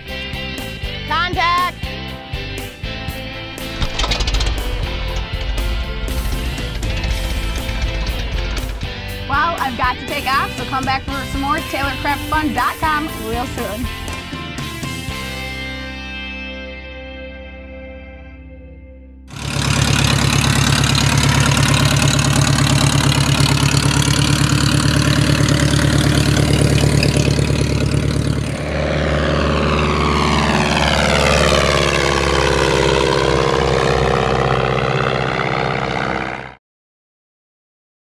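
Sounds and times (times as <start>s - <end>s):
propeller plane engine droning: 0.0s - 17.4s, 19.3s - 36.6s
plane passing low by: 1.6s - 16.2s, 19.3s - 36.6s.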